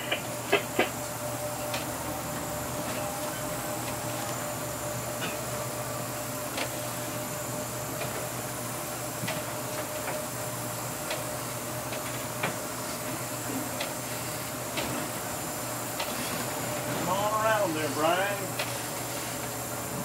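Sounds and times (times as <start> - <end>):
boat engine drone: 0.0 - 8.6, 12.8 - 20.0
thin steady whine: 0.0 - 20.0
drawn-out voice: 17.0 - 18.5.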